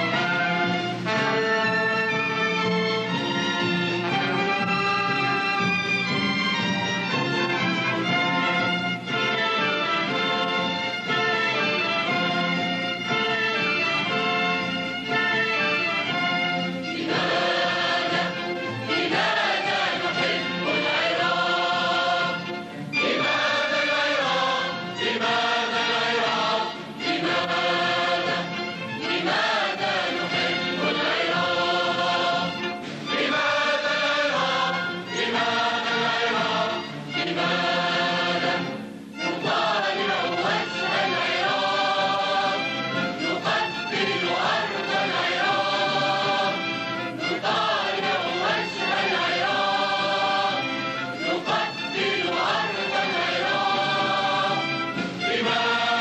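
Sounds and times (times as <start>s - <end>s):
choir singing with orchestra: 0.0s - 56.0s.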